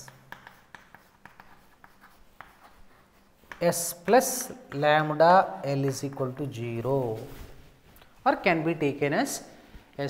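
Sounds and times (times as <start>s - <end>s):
chalk scratching on chalkboard: 0.0s - 5.1s.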